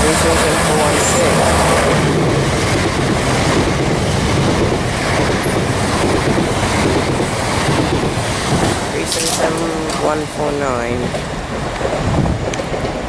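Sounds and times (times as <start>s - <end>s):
train wheels on rails: 0.0s - 13.0s.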